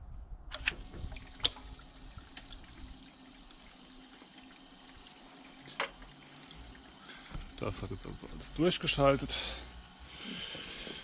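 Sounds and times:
relay clicking: 0.5 - 1.6
faint steady hum: 0.5 - 11.0.

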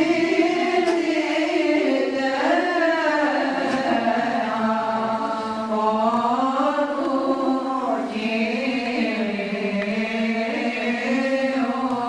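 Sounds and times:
voices chanting slow melody: 0.0 - 12.0.

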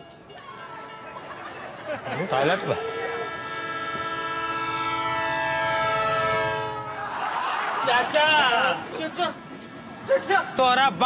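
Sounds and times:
train horn blast: 2.4 - 7.1.

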